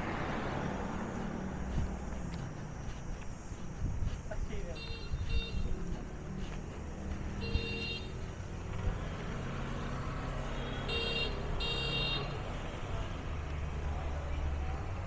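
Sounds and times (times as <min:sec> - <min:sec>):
rumble of passing engines: 0:00.0 - 0:15.0
motorbike horns beeping: 0:04.7 - 0:05.8, 0:07.4 - 0:08.2, 0:10.5 - 0:12.4.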